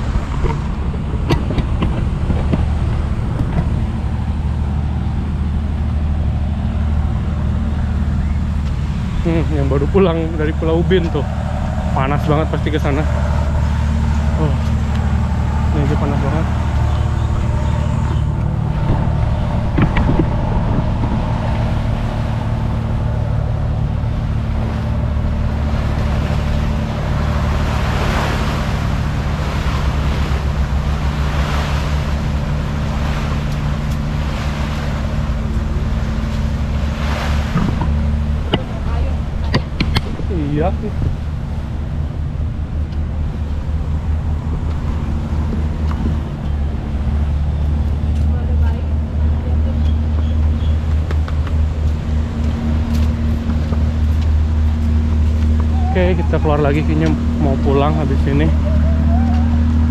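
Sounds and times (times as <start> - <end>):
road noise: 0.0 - 59.9
vehicle engine hum: 0.0 - 59.9.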